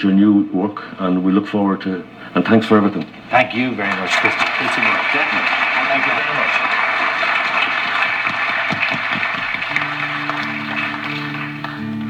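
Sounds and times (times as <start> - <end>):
audience applauding: 3.4 - 12.0.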